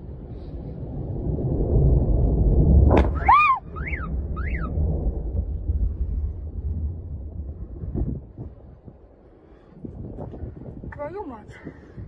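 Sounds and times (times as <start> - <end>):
deep explosion rumble: 0.0 - 11.0.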